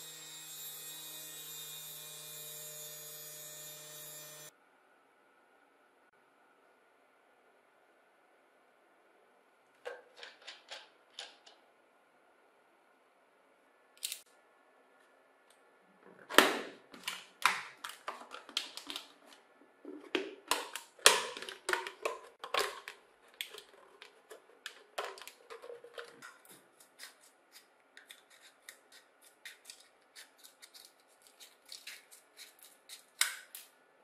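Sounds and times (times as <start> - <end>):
plastic bottle crackling: 16.4 - 26.5
scissors cutting plastic: 16.9 - 33.7.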